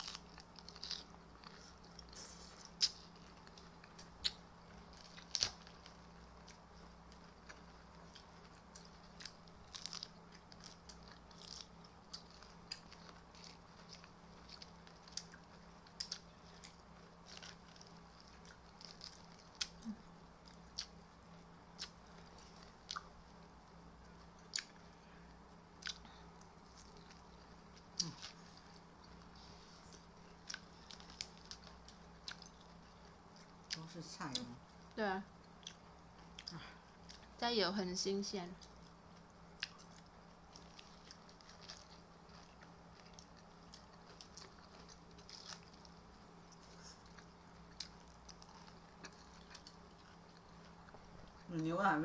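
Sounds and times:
person chewing salad: 0.0 - 34.5, 35.4 - 37.4, 38.6 - 51.5
steady low hum: 0.0 - 52.0.

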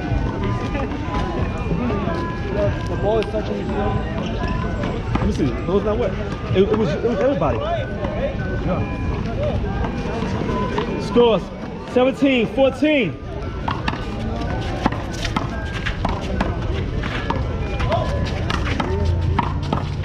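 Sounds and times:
people chattering: 0.0 - 20.0.

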